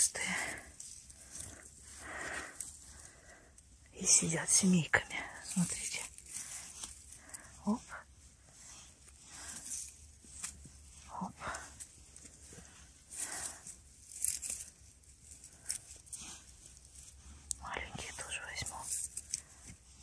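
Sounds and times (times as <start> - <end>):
hand rustling pine needles: 0.0 - 3.4, 4.1 - 20.0.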